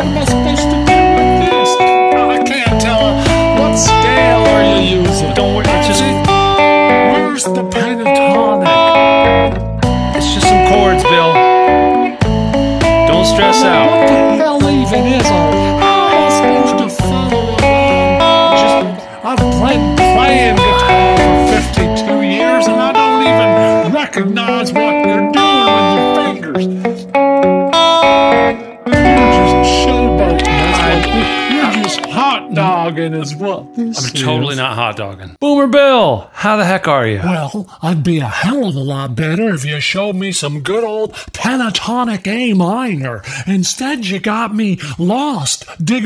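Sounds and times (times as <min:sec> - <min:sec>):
drum backing loop: 0:00.0 - 0:07.0, 0:09.8 - 0:22.2, 0:29.0 - 0:34.7
person singing: 0:00.0 - 0:09.4, 0:10.1 - 0:27.2, 0:28.1 - 0:34.9
electric guitar arpeggio: 0:00.0 - 0:34.6.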